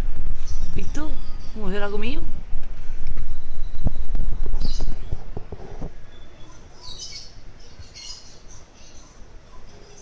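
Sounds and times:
bird chirping: 2.9 - 10.0.

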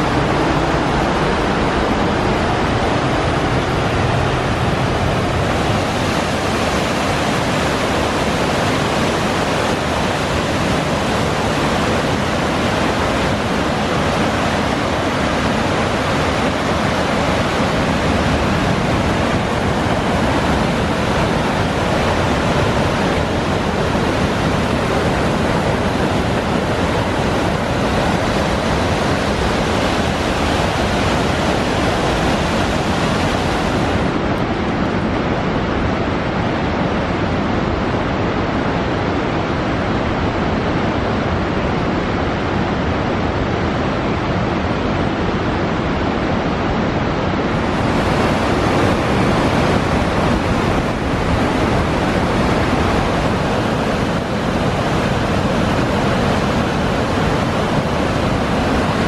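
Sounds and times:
waterfall rushing over rock: 0.0 - 59.0.

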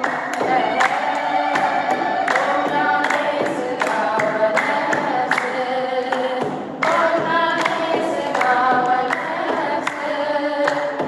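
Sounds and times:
hand drum beats: 0.0 - 10.1
group of voices singing: 0.0 - 11.0.

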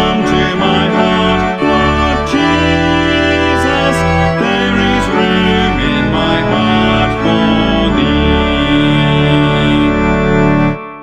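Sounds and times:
electronic keyboard organ chords: 0.0 - 11.0.

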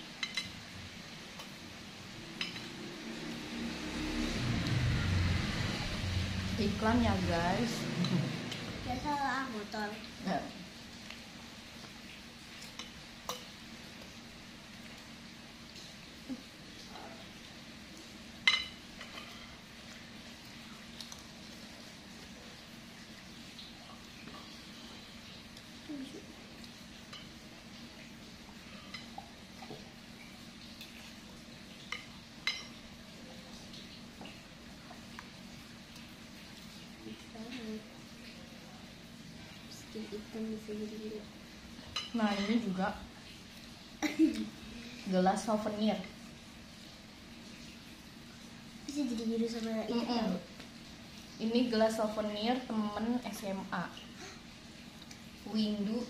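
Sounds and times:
rain hissing: 0.0 - 56.0
cutlery clinking against glass bowl: 0.2 - 0.6, 2.4 - 2.7, 18.5 - 19.4
cutlery clinking on glass bowl: 2.4 - 2.7.

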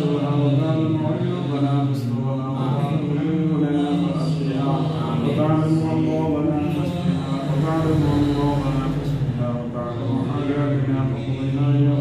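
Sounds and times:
man chanting a prayer: 0.0 - 12.0.

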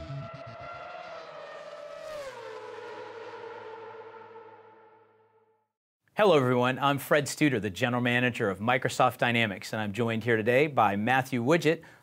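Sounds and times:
racing car engine whine passing: 0.0 - 5.5.

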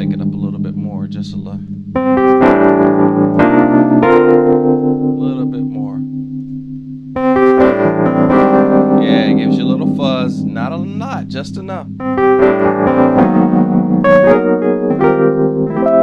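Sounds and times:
electric piano chords: 0.0 - 16.0.

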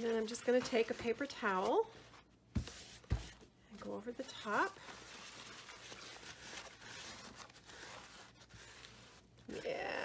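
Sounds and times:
paper towel rustling and rubbing: 0.0 - 9.6.

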